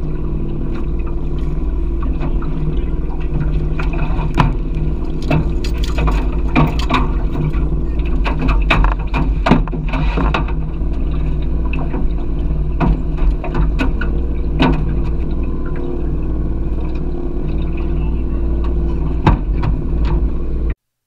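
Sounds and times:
boat motor running: 0.0s - 20.8s
water splashes: 0.0s - 20.8s
knocks and bumps on metal boat: 1.9s - 15.8s, 18.6s - 20.4s.

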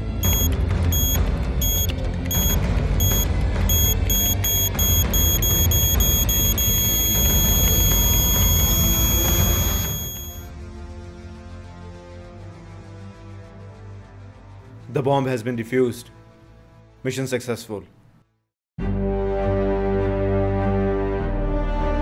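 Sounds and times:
tense film score music: 0.0s - 15.4s
high electronic timer beeps: 0.2s - 10.5s.

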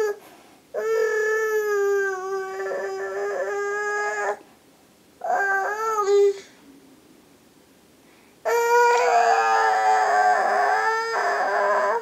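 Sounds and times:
toddler wailing: 0.0s - 0.2s, 0.8s - 4.4s, 5.2s - 6.5s, 8.5s - 12.0s.

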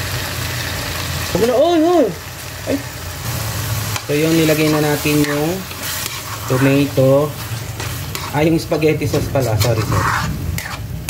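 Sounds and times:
cooling fan humming: 0.0s - 11.0s
sauce sizzling in a wok: 0.0s - 11.0s.

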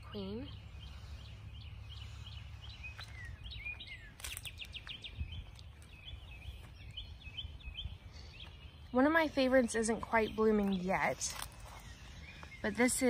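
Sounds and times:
songbirds chirping: 0.0s - 13.0s.

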